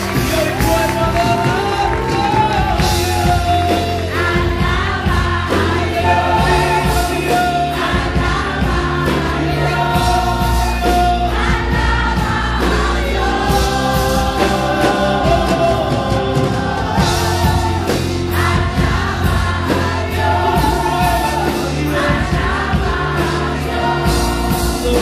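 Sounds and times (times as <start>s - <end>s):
backing singers: 0.0s - 25.0s
band playing: 0.0s - 25.0s.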